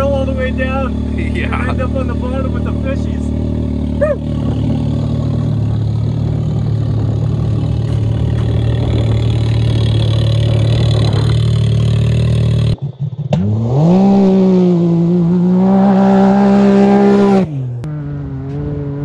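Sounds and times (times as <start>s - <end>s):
studded tires rattling on ice: 0.0s - 13.3s
engine running and revving: 0.0s - 19.0s.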